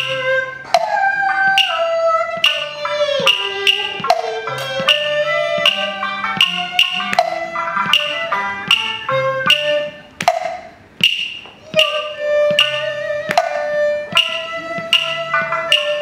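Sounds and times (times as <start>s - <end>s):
sharp percussion strikes: 0.0s - 16.0s
sustained instrumental melody: 0.0s - 16.0s.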